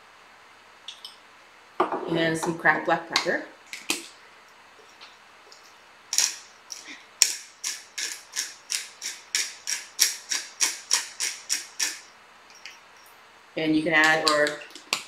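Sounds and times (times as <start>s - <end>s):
pepper grinder ratcheting clicks: 6.1s - 12.0s.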